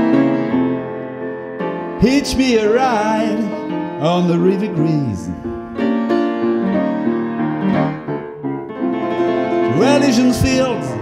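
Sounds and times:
acoustic piano playing blues: 0.0 - 11.0
man singing: 2.0 - 5.6, 9.7 - 11.0.

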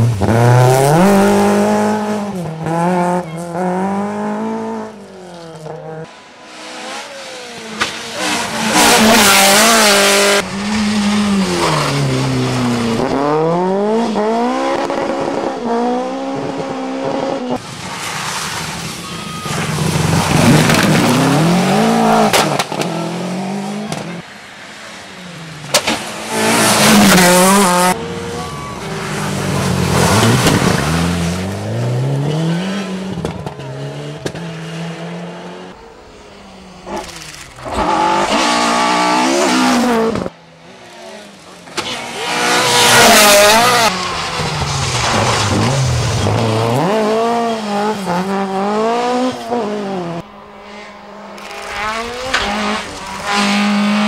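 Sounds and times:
rally cars racing past: 0.0 - 54.0.

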